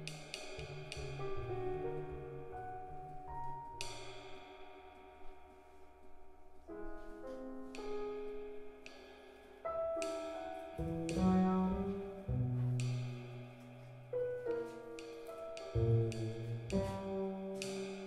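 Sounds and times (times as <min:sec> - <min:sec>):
double bass notes: 0:00.0 - 0:04.3, 0:10.0 - 0:18.0.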